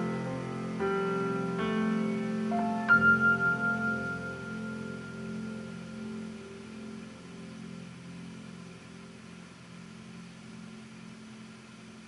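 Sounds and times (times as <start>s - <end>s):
piano chord ringing: 0.0s - 10.3s.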